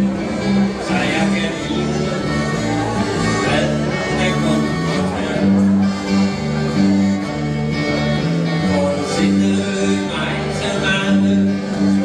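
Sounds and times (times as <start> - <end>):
live country band: 0.0 - 12.0.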